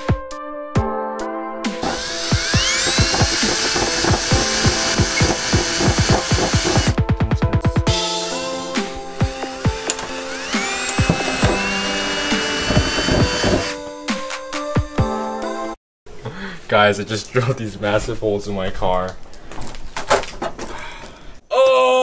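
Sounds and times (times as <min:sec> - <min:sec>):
cordless drill whining: 0:01.8 - 0:07.0, 0:08.2 - 0:13.8.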